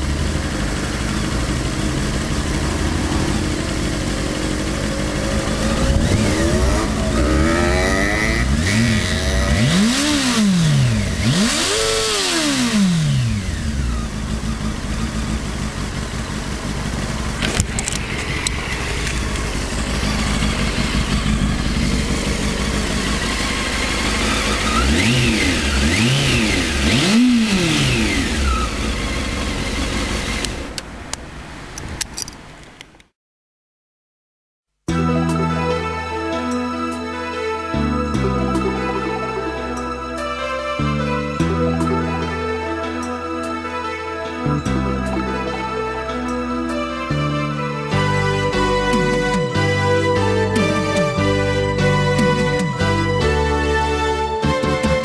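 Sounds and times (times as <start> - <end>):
motorcycle engine idling: 0.0 - 31.4
engine throttle blips: 0.0 - 33.0, 44.5 - 55.0.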